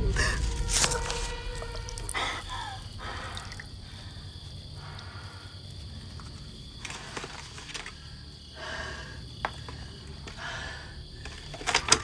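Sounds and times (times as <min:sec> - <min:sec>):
crickets chirring: 0:00.0 - 0:12.0.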